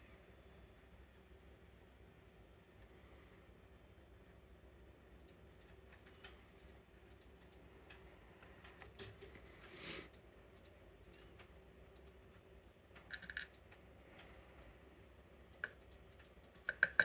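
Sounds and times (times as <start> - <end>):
lock pins clicking: 13.0 - 13.7.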